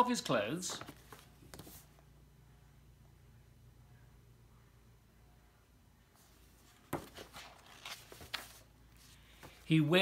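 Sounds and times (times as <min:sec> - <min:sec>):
book pages rustling: 0:00.7 - 0:02.0, 0:06.2 - 0:09.7.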